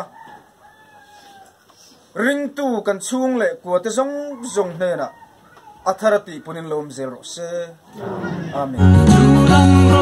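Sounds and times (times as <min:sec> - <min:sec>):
rooster crowing faintly: 0:00.0 - 0:01.7.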